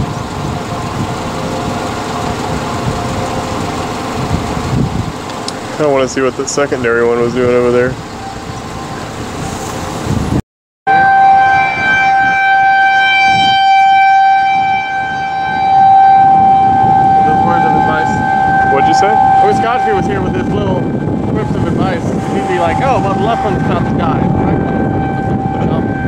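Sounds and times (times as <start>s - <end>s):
tornado siren steady tone: 0.0s - 26.0s
wind rumbling on microphone: 0.0s - 26.0s.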